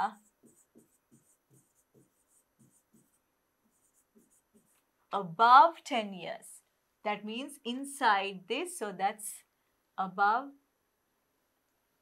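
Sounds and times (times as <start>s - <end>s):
pen tapping and scratching: 0.0s - 4.9s.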